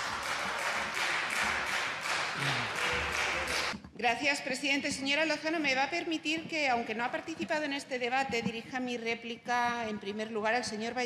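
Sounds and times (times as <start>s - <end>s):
crowd applauding: 0.0s - 3.8s.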